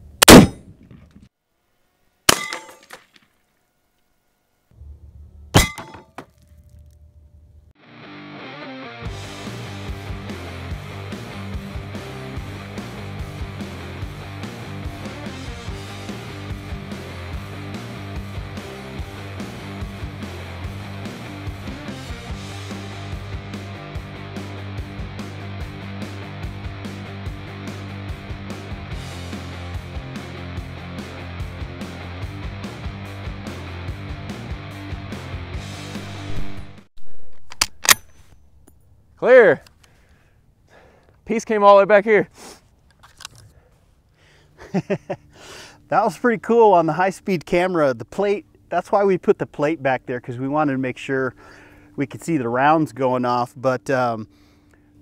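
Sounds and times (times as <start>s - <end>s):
sharp bangs: 0.0s - 1.2s
rifle shot: 0.2s - 1.2s, 2.3s - 2.7s, 37.4s - 38.3s
rock music with steady beat: 7.9s - 36.8s.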